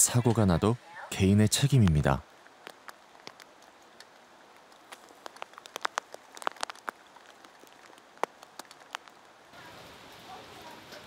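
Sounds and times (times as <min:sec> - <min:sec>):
light rain: 0:00.0 - 0:11.0.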